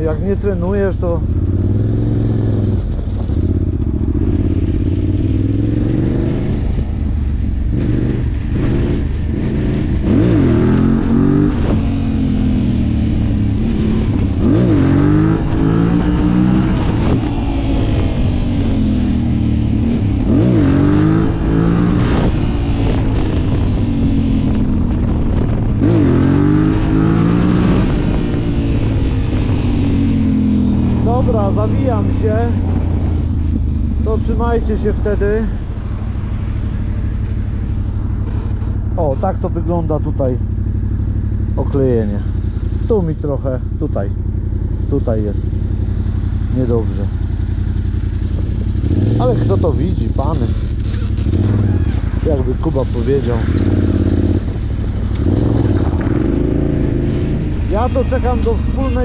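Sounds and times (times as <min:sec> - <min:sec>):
quad bike engine revving: 0:00.0 - 0:07.1, 0:07.7 - 0:59.0
wind across microphone: 0:01.2 - 0:39.1, 0:47.1 - 0:57.8.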